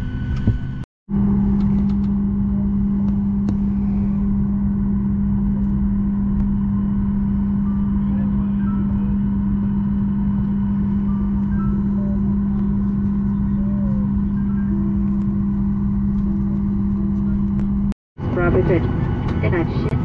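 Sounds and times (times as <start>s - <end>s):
aircraft cabin low hum: 0.0s - 20.0s.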